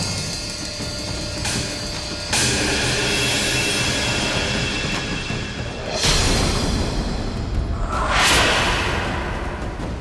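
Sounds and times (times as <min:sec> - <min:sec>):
dramatic background score: 0:00.0 - 0:10.0
low rumble: 0:07.6 - 0:10.0.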